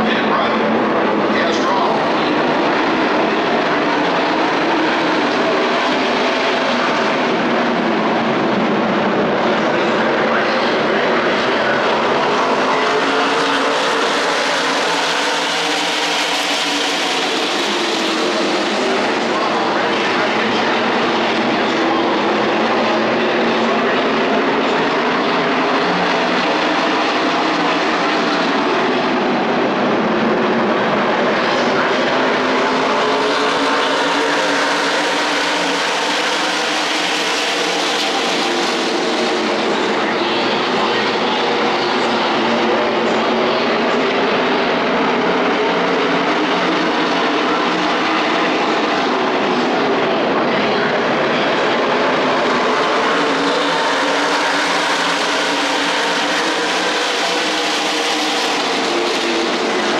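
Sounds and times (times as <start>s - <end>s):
race cars passing at speed: 0.0s - 59.9s.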